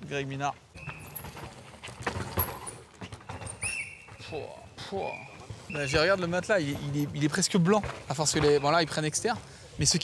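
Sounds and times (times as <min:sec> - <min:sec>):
bike clattering knocks: 0:00.8 - 0:04.4, 0:05.9 - 0:09.2.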